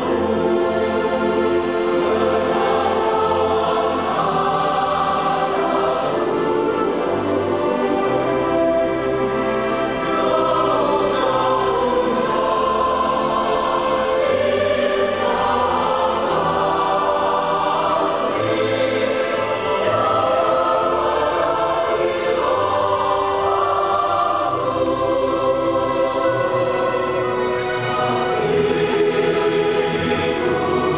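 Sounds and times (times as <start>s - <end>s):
mixed choir singing in harmony: 0.0s - 30.9s.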